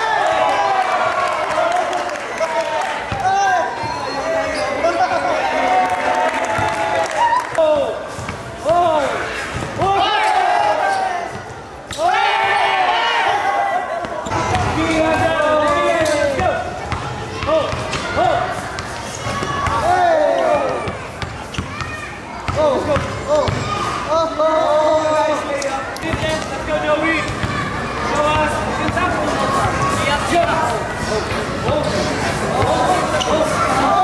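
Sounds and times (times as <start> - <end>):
people's voices: 0.0 - 34.0
players shouting: 0.0 - 34.0.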